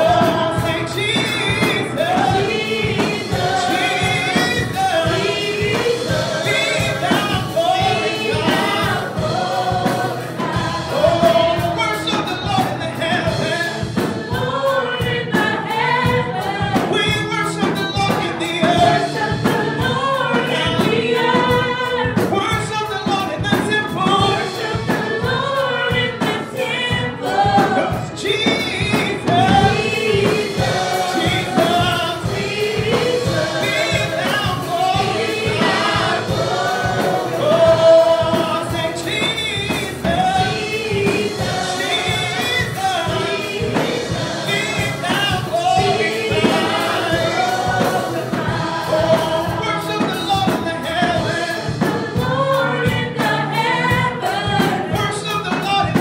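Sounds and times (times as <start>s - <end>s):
gospel choir singing: 0.0s - 56.0s
instrumental accompaniment with beat: 0.0s - 56.0s.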